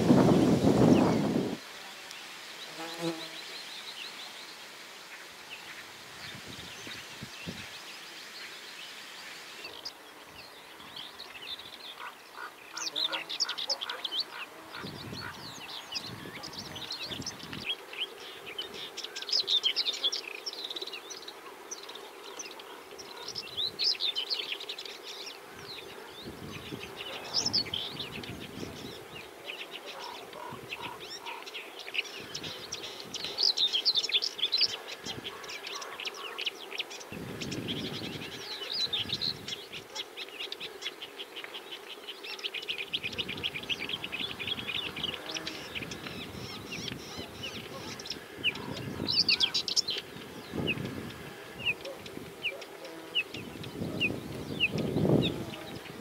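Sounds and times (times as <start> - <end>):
bird singing chirping phrases: 9.6 - 56.0.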